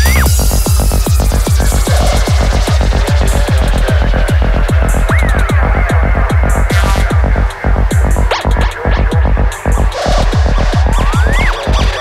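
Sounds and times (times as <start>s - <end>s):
psytrance music: 0.0s - 12.0s.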